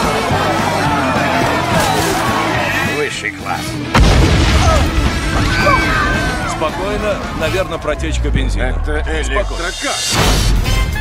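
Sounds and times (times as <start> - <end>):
music: 0.0 - 11.0
explosion boom: 4.0 - 5.6.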